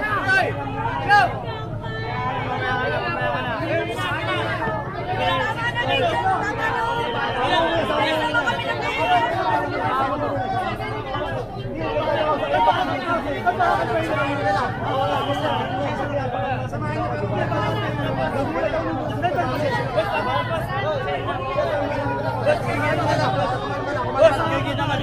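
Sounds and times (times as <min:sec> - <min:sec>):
crowd talking and arguing: 0:00.0 - 0:25.0.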